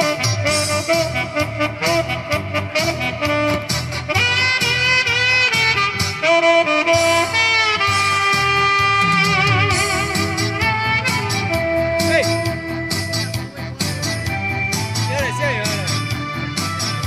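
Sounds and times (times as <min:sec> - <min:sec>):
backing track with steady beat: 0:00.0 - 0:17.0
saxophone melody: 0:00.0 - 0:17.0.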